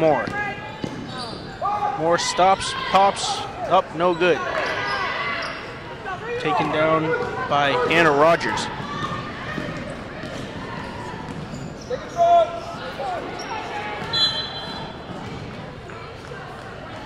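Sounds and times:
voices echoing in hall: 0.0s - 17.0s
basketball bouncing on gym floor: 8.8s - 11.7s, 14.9s - 16.3s.

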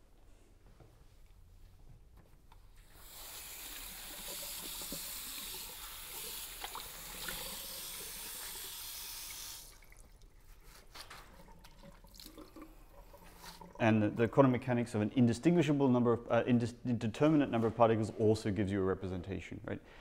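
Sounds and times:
tap water running into sink: 2.9s - 13.8s.

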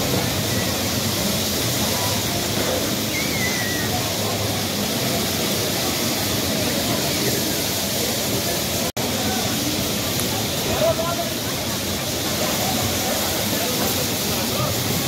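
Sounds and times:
babble of voices: 0.0s - 15.0s
bumper cars running: 0.0s - 15.0s.

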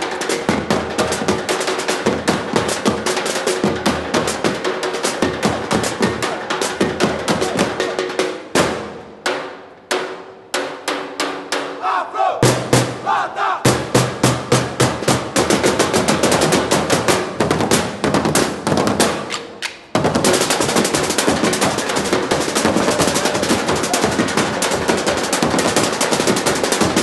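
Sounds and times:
drum line playing: 0.0s - 27.0s
people shouting: 11.8s - 13.7s, 22.6s - 24.4s.

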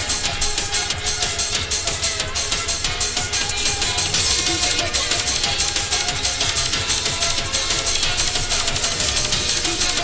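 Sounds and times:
happy hardcore rave music: 0.0s - 10.0s.

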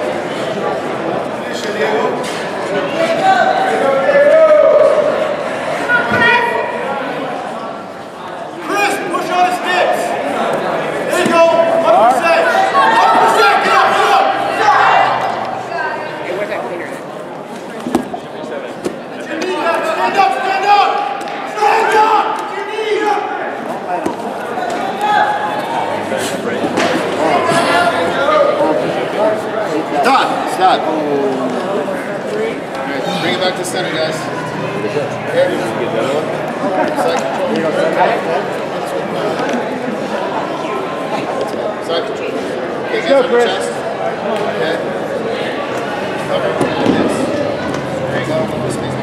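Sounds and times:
voices shouting in echoing hall: 0.0s - 17.5s, 18.2s - 49.0s
spectator chatter: 0.0s - 49.0s.

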